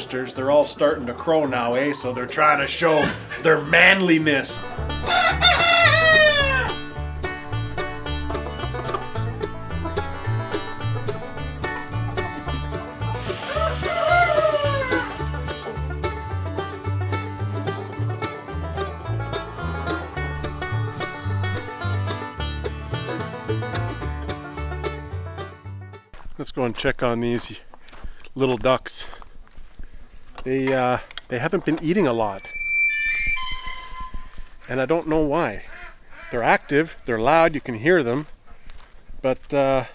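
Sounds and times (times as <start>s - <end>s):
banjo country music: 0.0s - 26.2s
roosters crowing: 4.6s - 15.6s.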